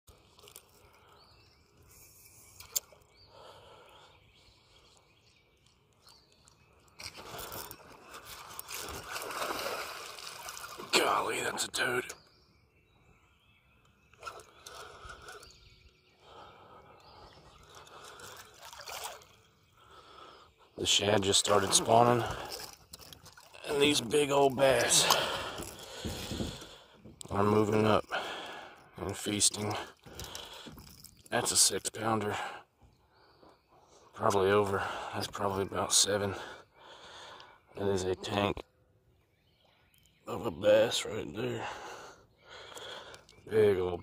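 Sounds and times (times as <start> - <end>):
faint water splashing: 0.1 - 12.1, 16.2 - 32.6
faint bird calls: 10.4 - 23.9.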